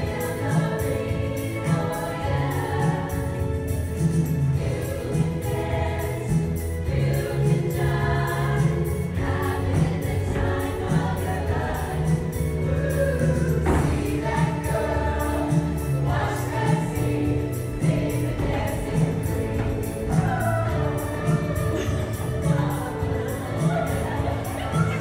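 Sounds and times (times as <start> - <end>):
choir singing in harmony: 0.0 - 25.0
accompaniment with steady beat: 2.7 - 25.0.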